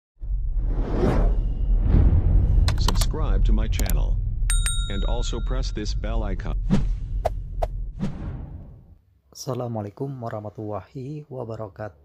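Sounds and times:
cinematic whoosh: 0:00.2 - 0:04.5.

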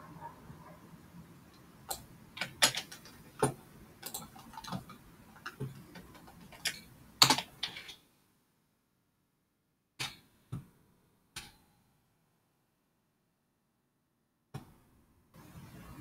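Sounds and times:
typing on computer keyboard: 0:01.9 - 0:08.0.

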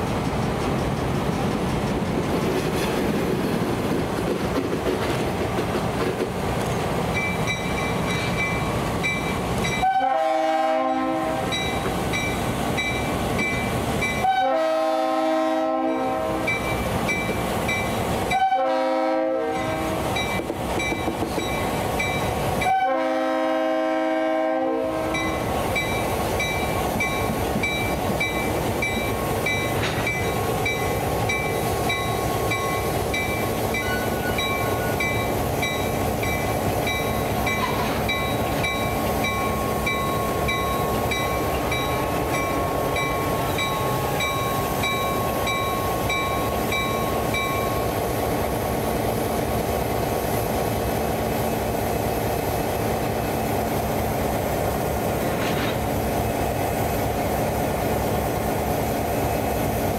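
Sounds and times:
diesel locomotive engine under load: 0:00.0 - 0:59.9
locomotive bell ringing: 0:07.1 - 0:09.9, 0:11.4 - 0:14.3, 0:25.1 - 0:47.9
locomotive horn blasts: 0:09.7 - 0:11.7, 0:14.2 - 0:16.6, 0:18.3 - 0:20.0, 0:22.6 - 0:25.4.

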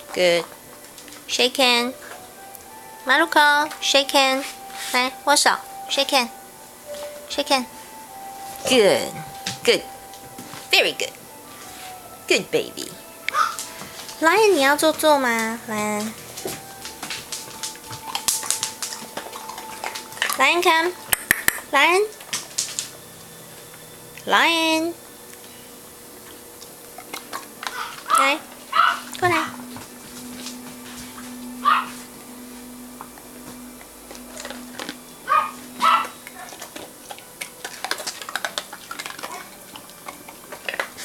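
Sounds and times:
dog barking: 0:13.3 - 0:13.6, 0:27.7 - 0:29.6, 0:31.6 - 0:32.0, 0:35.3 - 0:36.7.

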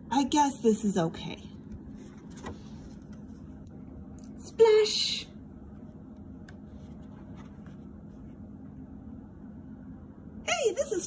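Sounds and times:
low room hum: 0:00.0 - 0:11.0
book page turning: 0:01.7 - 0:03.6, 0:06.5 - 0:08.3.

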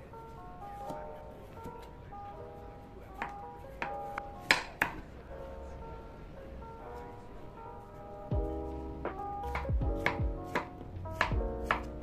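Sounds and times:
background music with steady beat: 0:00.0 - 0:05.8, 0:06.6 - 0:12.0
knife chopping on wooden board: 0:03.2 - 0:05.0, 0:09.4 - 0:12.0.

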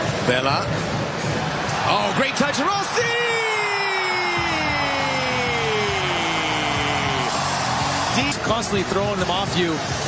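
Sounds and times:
stadium crowd roaring: 0:01.5 - 0:10.0.

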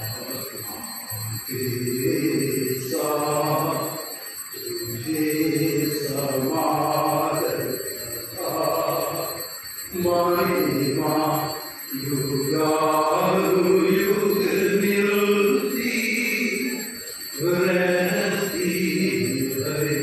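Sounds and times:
low voice chanting: 0:00.0 - 0:20.0.

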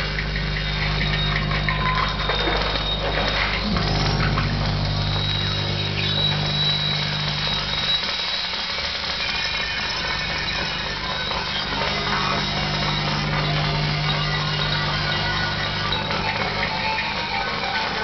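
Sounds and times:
crackling hissing noise: 0:00.0 - 0:18.0
thin high tone: 0:01.1 - 0:18.0
steady low hum: 0:03.0 - 0:08.2, 0:10.9 - 0:16.9.

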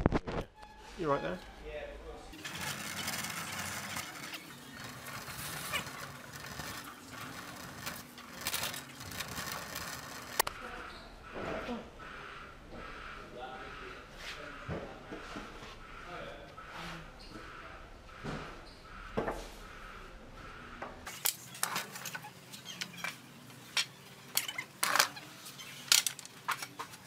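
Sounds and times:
indistinct voices: 0:02.2 - 0:21.0.

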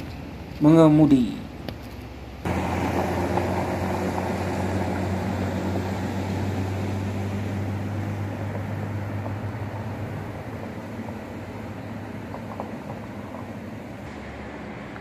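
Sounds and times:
broad rushing noise: 0:01.6 - 0:15.0.

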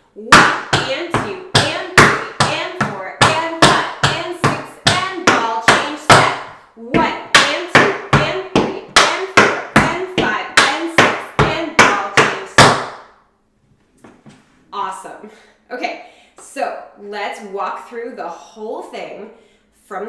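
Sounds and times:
tap shoes on wooden board: 0:00.4 - 0:13.0.

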